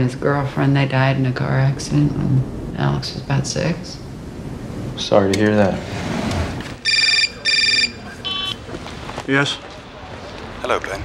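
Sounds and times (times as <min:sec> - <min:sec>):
mobile phone ringing: 0:06.8 - 0:08.6.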